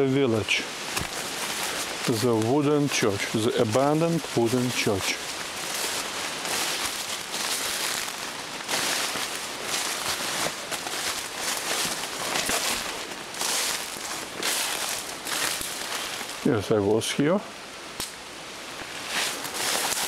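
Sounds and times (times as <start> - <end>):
leaves and stems rustling: 0.0 - 20.0
footsteps through tall grass: 0.3 - 16.5, 18.8 - 20.0.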